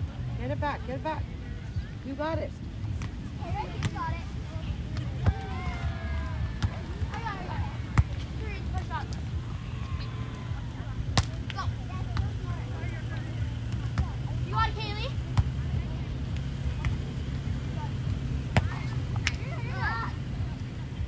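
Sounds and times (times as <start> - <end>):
hands slapping volleyball: 18.5 - 19.5.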